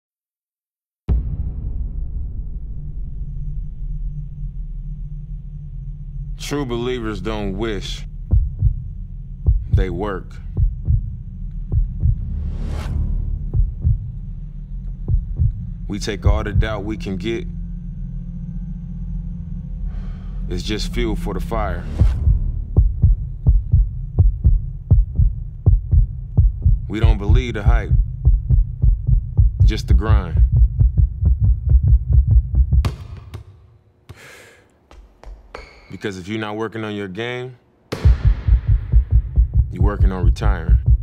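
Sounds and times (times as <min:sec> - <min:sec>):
low steady drone: 0:01.5 - 0:32.8
deep bass thumps: 0:08.3 - 0:12.4, 0:13.3 - 0:14.3, 0:15.0 - 0:17.0, 0:22.0 - 0:33.5, 0:38.0 - 0:41.0
basketball dribbling on hardwood: 0:32.7 - 0:34.2, 0:34.9 - 0:36.0
sharp slaps: 0:32.8 - 0:34.2, 0:37.9 - 0:38.8.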